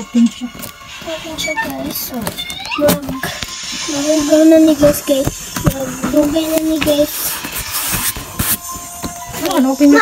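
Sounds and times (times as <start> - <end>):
packaging rustling and crinkling: 0.5 - 10.0.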